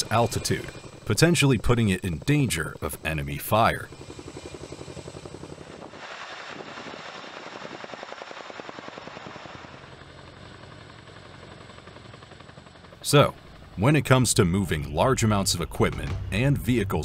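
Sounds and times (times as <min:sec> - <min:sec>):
helicopter rotor chop: 0:00.0 - 0:17.0.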